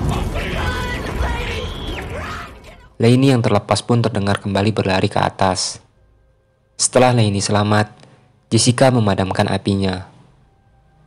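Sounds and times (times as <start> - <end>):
low rumble: 0.0 - 3.0.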